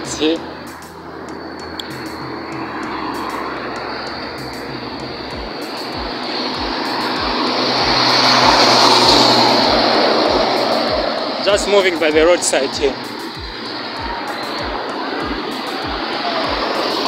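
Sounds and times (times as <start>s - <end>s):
lorry passing by: 0.0s - 17.0s
low engine hum: 0.0s - 17.0s.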